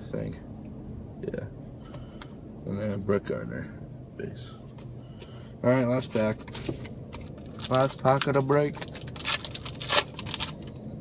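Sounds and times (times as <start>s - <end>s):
wrapper being torn open: 7.2s - 10.7s.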